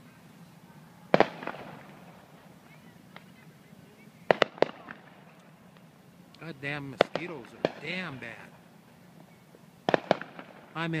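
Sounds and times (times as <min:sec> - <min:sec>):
distant fireworks bursting: 0:01.1 - 0:11.0.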